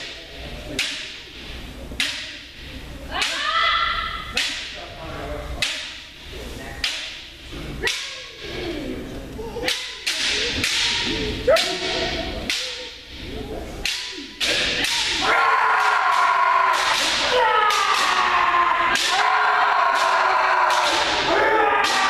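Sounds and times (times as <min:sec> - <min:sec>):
people shouting: 0:03.1 - 0:04.7, 0:09.6 - 0:12.9, 0:13.8 - 0:22.0.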